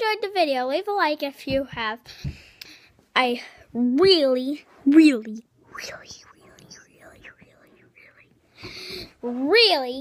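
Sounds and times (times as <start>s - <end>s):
boy whispering: 4.8s - 9.6s.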